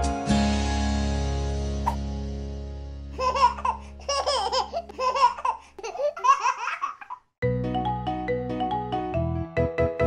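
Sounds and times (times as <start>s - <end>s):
cheerful music intro: 0.0s - 5.4s, 7.4s - 10.0s
baby laughing: 3.1s - 7.3s.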